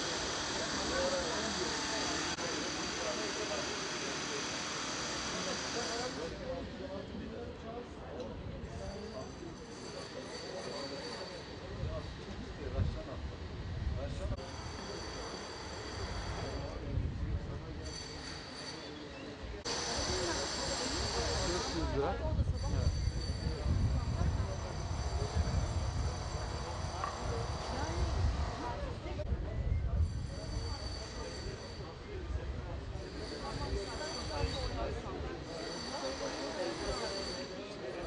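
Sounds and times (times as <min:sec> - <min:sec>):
people talking indistinctly: 0:26.6 - 0:38.0.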